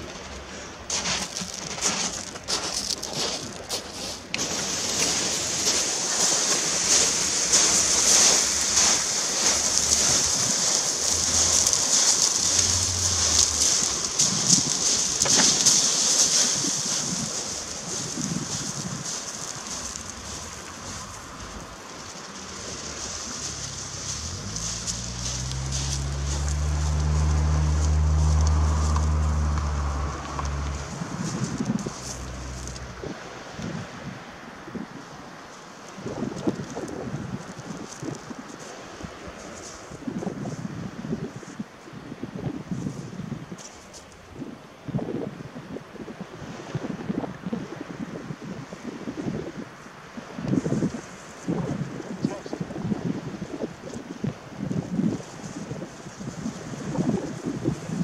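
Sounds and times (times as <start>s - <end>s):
footsteps on shingle: 0.0s - 33.2s, 35.5s - 40.7s
wheels crunching on shingle: 0.0s - 44.7s, 46.1s - 58.0s.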